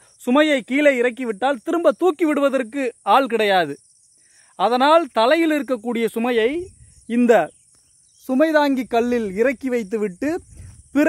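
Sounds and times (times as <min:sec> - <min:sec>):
insects chirring: 0:00.0 - 0:11.0
man talking: 0:00.2 - 0:03.8, 0:04.6 - 0:07.5, 0:08.2 - 0:11.0.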